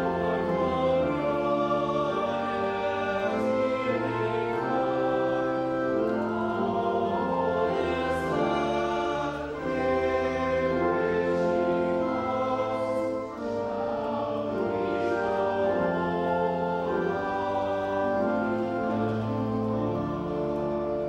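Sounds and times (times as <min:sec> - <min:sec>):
pipe organ playing hymn: 0:00.0 - 0:21.0
voices singing: 0:00.0 - 0:21.0.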